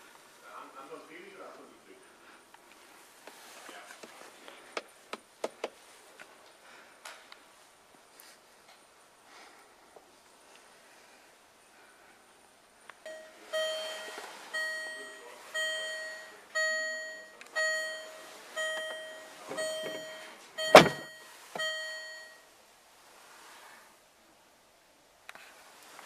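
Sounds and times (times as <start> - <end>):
car warning chime beeping: 13.1 - 22.5
loud thunk: 20.7 - 21.1.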